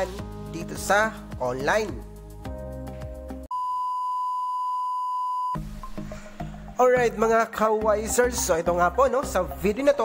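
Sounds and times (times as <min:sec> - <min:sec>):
music: 0:00.0 - 0:03.5, 0:05.6 - 0:10.0
steady test tone beep: 0:03.5 - 0:05.6.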